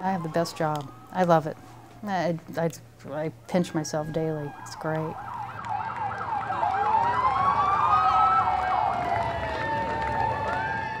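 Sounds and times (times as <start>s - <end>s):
sirens wailing: 0.0s - 2.0s, 3.8s - 11.0s.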